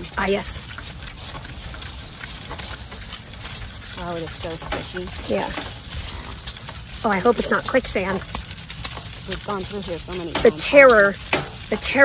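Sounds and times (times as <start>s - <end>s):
cart rumbling over grass: 0.0s - 12.0s
faint irregular pattering: 0.0s - 12.0s.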